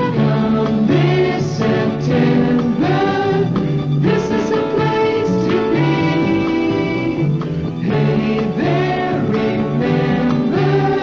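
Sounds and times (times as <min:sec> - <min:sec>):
band backing music: 0:00.0 - 0:11.0
choir singing a jingle: 0:00.0 - 0:11.0.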